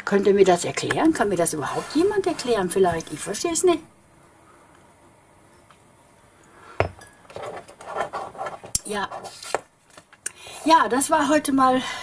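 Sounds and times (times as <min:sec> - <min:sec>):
hard objects clinking on table: 0:06.8 - 0:08.8.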